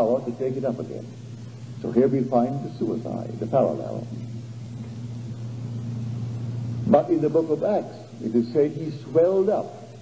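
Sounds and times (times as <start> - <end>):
faint hiss: 0.0 - 10.0
low hum: 0.0 - 10.0.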